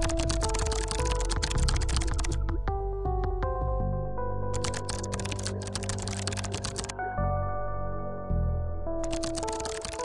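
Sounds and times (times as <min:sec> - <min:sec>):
rapid keyboard typing: 0:00.0 - 0:02.7, 0:04.6 - 0:07.0, 0:09.0 - 0:10.0
background music: 0:00.0 - 0:10.0.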